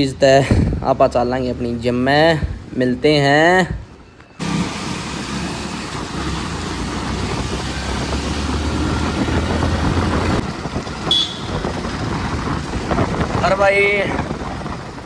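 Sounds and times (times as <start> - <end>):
wind: 0.0 - 15.0
wet road noise: 1.5 - 15.0
motorcycle engine: 4.3 - 15.0.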